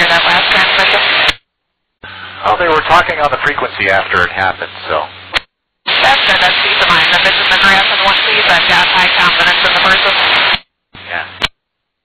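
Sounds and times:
radio static hiss: 0.0s - 1.4s, 2.0s - 11.6s.

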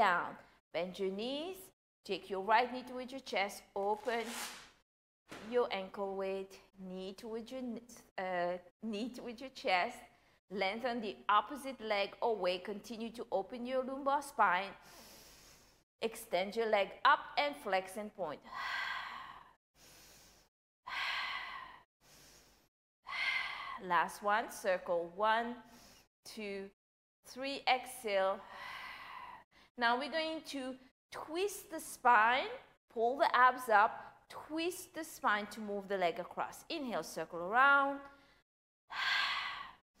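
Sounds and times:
woman breathing heavily: 14.8s - 15.8s, 18.5s - 23.8s, 28.4s - 29.6s, 38.9s - 39.8s
woman breathing out: 38.9s - 39.8s.

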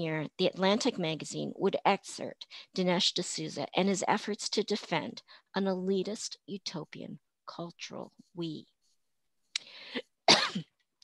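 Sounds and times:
woman coughing: 10.3s - 10.8s.

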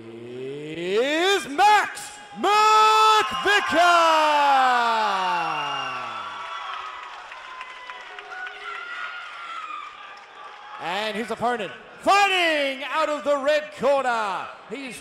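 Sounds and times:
announcer calling over loudspeaker: 0.8s - 5.1s
crowd cheering and applause: 2.2s - 11.6s.

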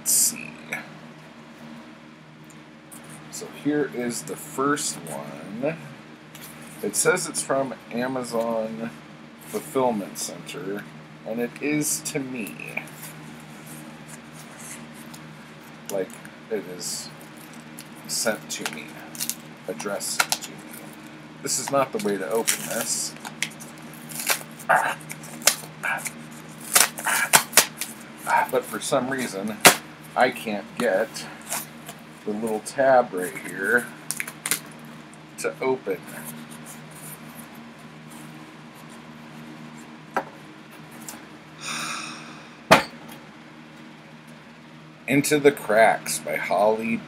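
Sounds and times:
faint steady hum: 0.0s - 47.0s
paper mailer rustling: 17.2s - 29.7s.

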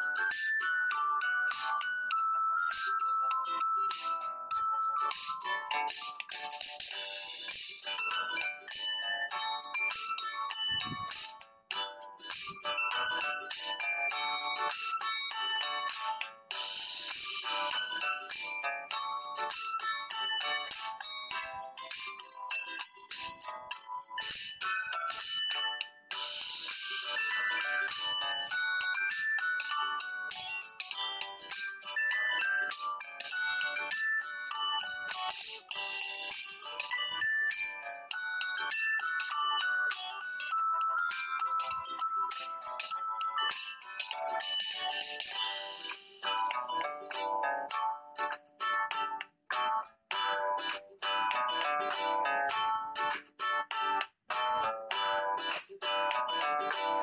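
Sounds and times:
quick high instrumental melody: 0.0s - 57.0s.

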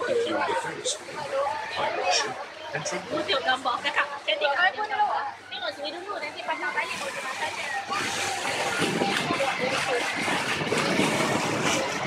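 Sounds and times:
boat engine: 0.0s - 12.0s
water wash: 0.0s - 12.0s.

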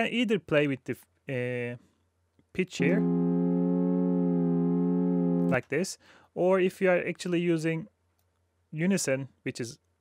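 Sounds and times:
sustained sawtooth synth chord: 2.8s - 5.6s.

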